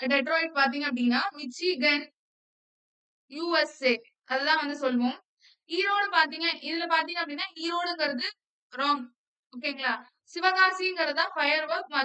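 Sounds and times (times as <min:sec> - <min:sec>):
woman speaking: 0:00.0 - 0:02.1, 0:03.3 - 0:12.0.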